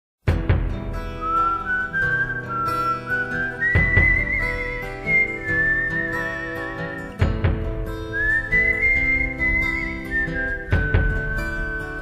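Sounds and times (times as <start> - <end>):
strummed acoustic guitar: 0.2 - 12.0
whistled melody: 1.0 - 7.3, 7.9 - 12.0.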